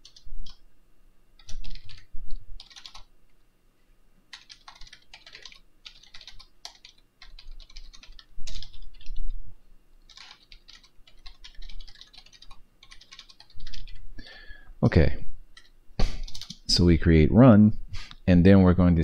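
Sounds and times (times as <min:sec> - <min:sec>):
typing on keyboard: 0:00.0 - 0:00.6, 0:01.4 - 0:03.1, 0:04.3 - 0:09.3, 0:10.1 - 0:14.0, 0:15.6 - 0:16.6.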